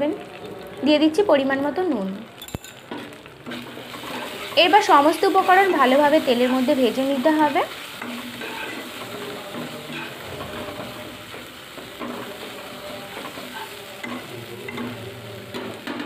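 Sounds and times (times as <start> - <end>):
masala sizzling in hot oil: 0.0 - 16.0
spatula scraping pan: 2.8 - 16.0.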